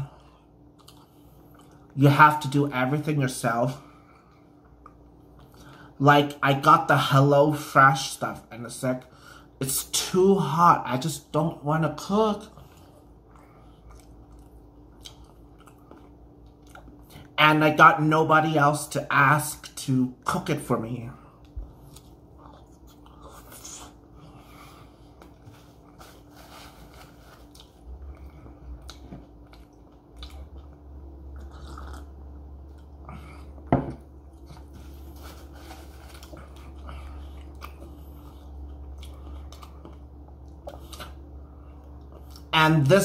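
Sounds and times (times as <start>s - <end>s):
steady low hum: 0.0s - 43.0s
chewing and biting food: 0.6s - 2.0s, 12.5s - 17.4s, 21.4s - 42.5s.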